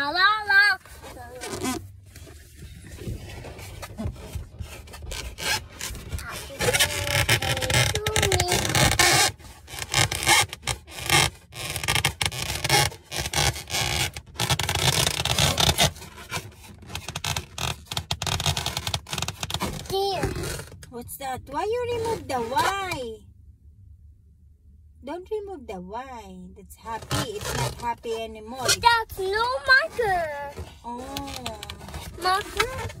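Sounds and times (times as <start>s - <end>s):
rubbing and scraping on microphone: 0.0s - 23.0s, 26.8s - 33.0s.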